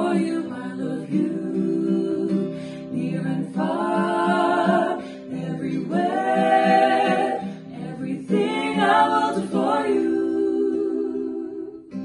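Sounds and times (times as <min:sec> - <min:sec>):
voices singing close harmony: 0:00.0 - 0:11.9
soft acoustic guitar: 0:00.0 - 0:12.0.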